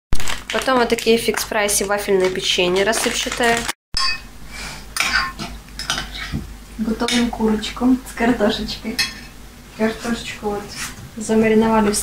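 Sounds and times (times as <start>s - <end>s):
metal utensil scraping a bowl: 5.0s - 6.4s.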